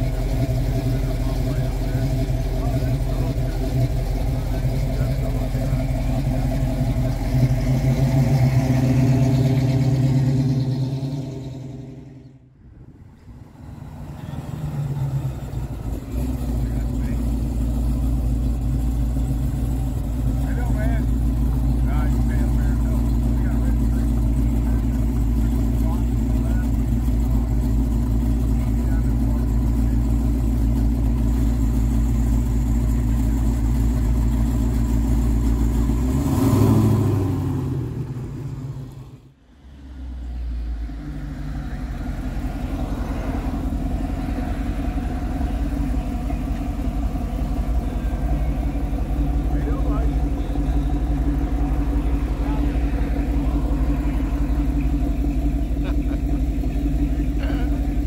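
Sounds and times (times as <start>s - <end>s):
car engine idling: 0.0s - 58.0s
deep engine idle rumble: 0.0s - 58.0s.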